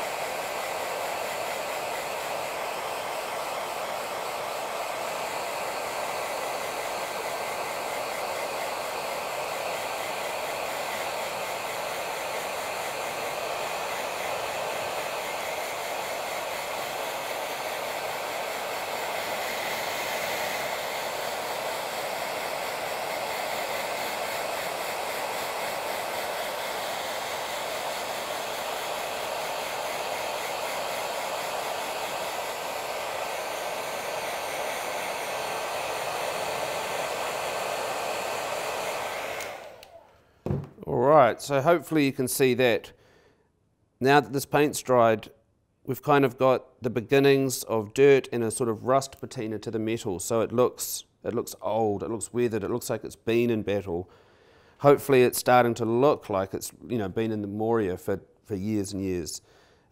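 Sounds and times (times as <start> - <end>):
hair dryer blowing: 0.0 - 42.8, 54.8 - 56.0.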